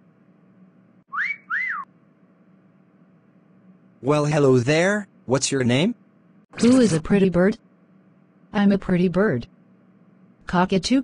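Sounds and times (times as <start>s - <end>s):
two-note wolf whistle: 1.1s - 1.9s.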